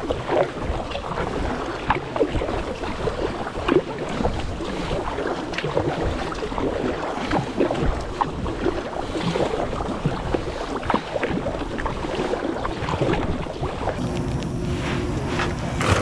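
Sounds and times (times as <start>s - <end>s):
water splashing and dripping: 0.0s - 14.5s
kayak paddle strokes: 0.0s - 16.0s.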